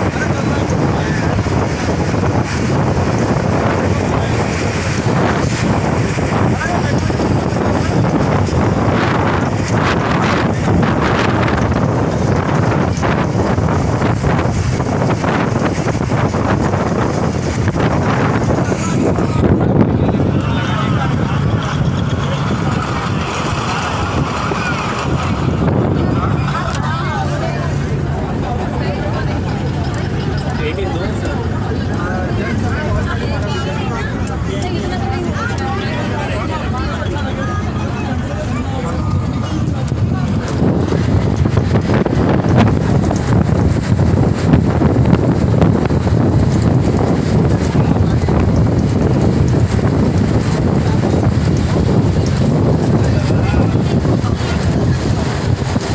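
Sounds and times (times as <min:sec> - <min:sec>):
bus engine hum: 0:00.0 - 0:55.9
wind rumbling over microphone: 0:00.0 - 0:55.9.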